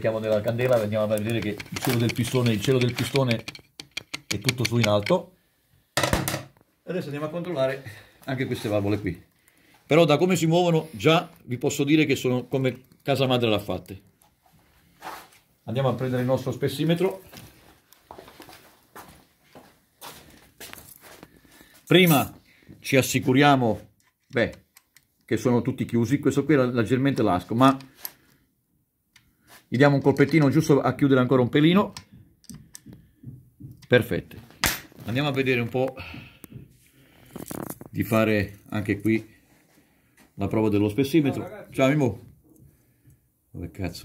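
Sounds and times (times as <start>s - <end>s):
tools being handled: 0.2s - 5.2s, 37.2s - 38.0s.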